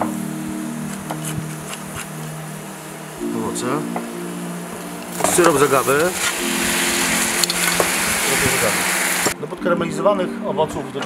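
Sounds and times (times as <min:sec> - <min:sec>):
syrup and fruit sizzling in a pan: 0:04.6 - 0:09.4.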